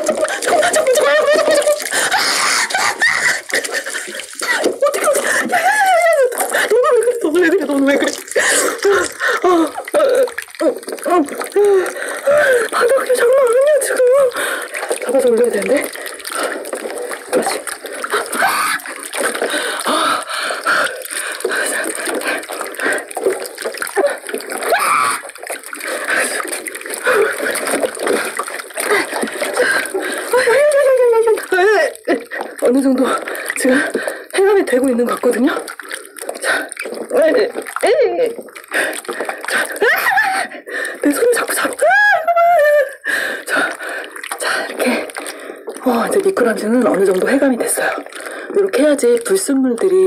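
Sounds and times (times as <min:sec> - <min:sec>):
water splashing in a glass dish: 0:00.0 - 0:42.6, 0:43.4 - 0:50.0
woman talking: 0:05.9 - 0:11.8, 0:12.8 - 0:14.4, 0:15.0 - 0:15.9, 0:30.3 - 0:35.7, 0:37.1 - 0:38.4, 0:41.0 - 0:42.4, 0:45.8 - 0:50.0.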